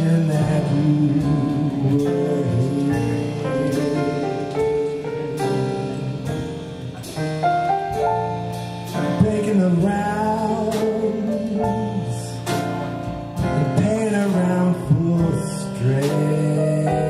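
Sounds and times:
man crooning a ballad: 0.0 - 5.0, 9.0 - 12.9, 13.5 - 17.0
piano accompaniment: 0.0 - 17.0.

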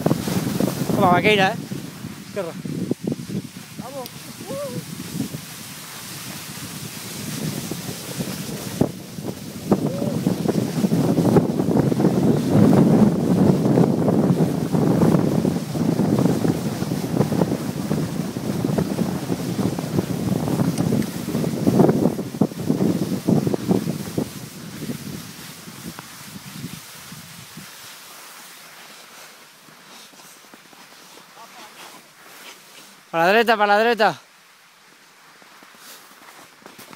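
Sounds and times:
wind buffeting microphone: 0.0 - 27.7
skis scraping over snow: 0.0 - 34.0, 34.8 - 36.9.

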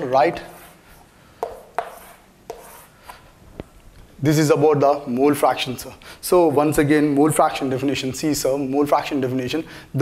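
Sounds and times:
chalk scratching on chalkboard: 0.0 - 3.3
sharp chalk taps: 0.3 - 3.7.

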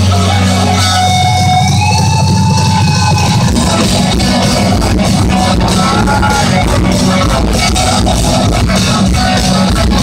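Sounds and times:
pounding drums and bass: 0.0 - 10.0
high note bent upward: 1.1 - 8.0.

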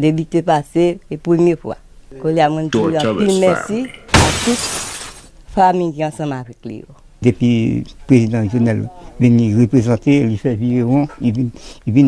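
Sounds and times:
man speaking: 2.7 - 4.2.

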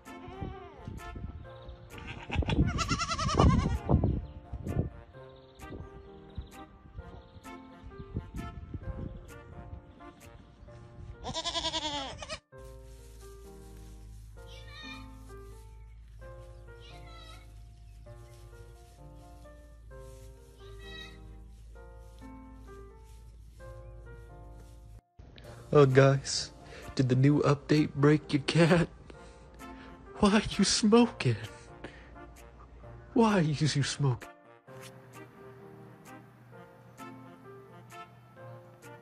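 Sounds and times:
goat kid bleating: 0.0 - 1.0, 1.9 - 3.9, 11.2 - 12.4
background music: 0.0 - 39.0.

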